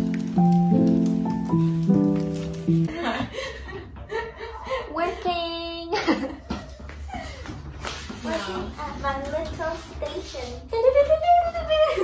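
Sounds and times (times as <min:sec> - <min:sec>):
woman chuckling: 0:02.9 - 0:04.8.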